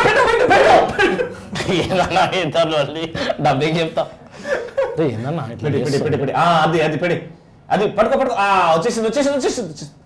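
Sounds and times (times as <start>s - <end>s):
men laughing: 0.0s - 6.6s
men speaking: 0.0s - 10.0s.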